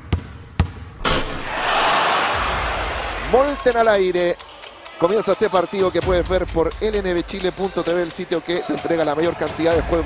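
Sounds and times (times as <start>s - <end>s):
basketball bouncing: 0.0s - 1.2s.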